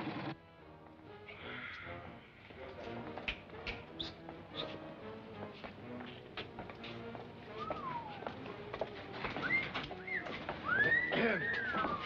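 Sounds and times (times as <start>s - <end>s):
men wolf whistling: 3.7s - 4.8s, 7.5s - 8.4s, 9.4s - 12.0s.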